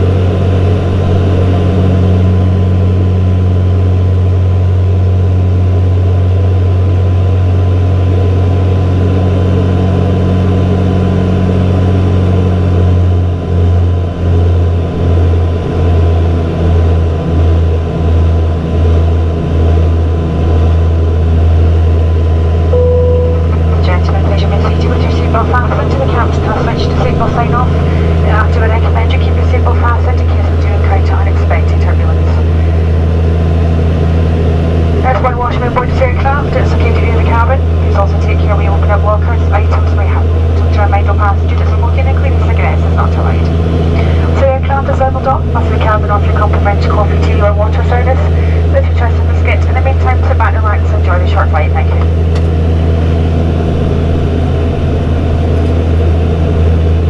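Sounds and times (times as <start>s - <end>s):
turboprop cabin drone: 0.0s - 57.0s.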